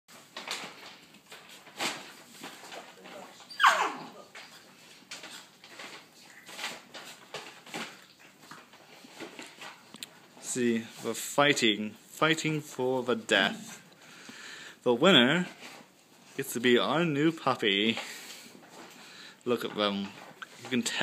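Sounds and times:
puppies scuffling: 0.1 - 11.7
puppy whining yelp: 3.4 - 4.3
puppies yipping: 3.5 - 4.2.

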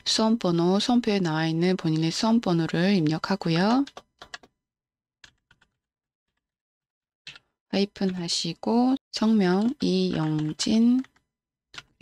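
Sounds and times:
faint keyboard keystrokes: 2.6 - 4.6, 9.3 - 12.0.

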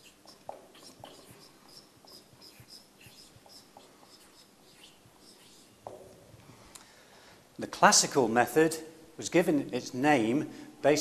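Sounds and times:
marker squeaking on a whiteboard: 0.0 - 6.4.

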